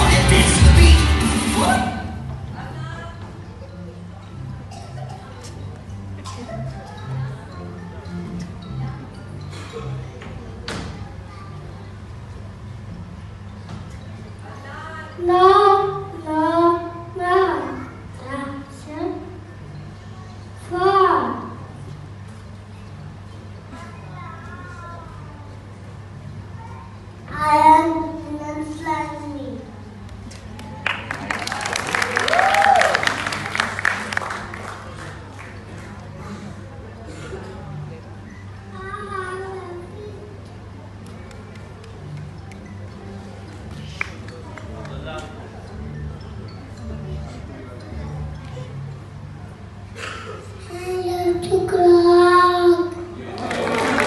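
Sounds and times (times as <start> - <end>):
audience applause: 30.8 - 35.9, 53.3 - 54.0.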